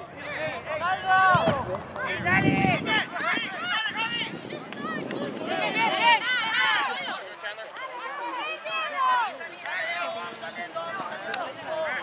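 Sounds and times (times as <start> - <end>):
people shouting across a field: 0.0 - 12.0.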